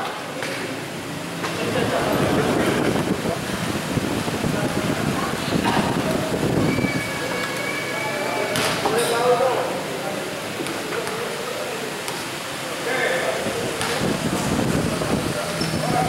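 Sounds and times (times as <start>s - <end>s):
spectators chattering and calling out: 0.0s - 16.0s.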